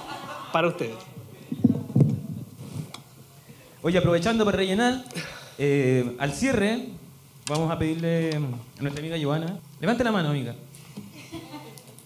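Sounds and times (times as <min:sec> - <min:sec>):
microphone handling noise: 0:01.2 - 0:03.1.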